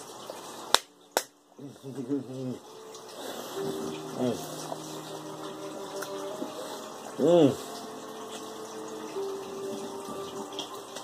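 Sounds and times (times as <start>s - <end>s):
finger snaps: 0.7s - 1.4s
man humming: 7.1s - 7.8s.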